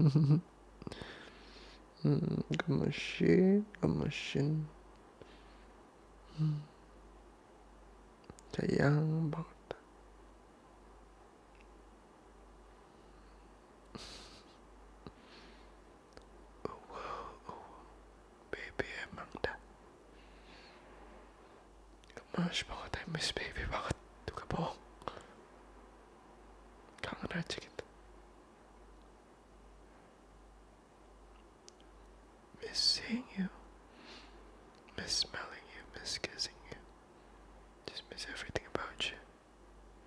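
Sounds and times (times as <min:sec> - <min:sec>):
man whispering: 0:02.0 - 0:04.8, 0:06.3 - 0:06.8, 0:08.4 - 0:09.9, 0:16.6 - 0:17.9, 0:18.5 - 0:19.6, 0:22.1 - 0:25.4, 0:27.0 - 0:27.9, 0:32.5 - 0:33.6, 0:34.9 - 0:36.9, 0:37.8 - 0:39.3
lip and mouth clicks: 0:31.4 - 0:31.9.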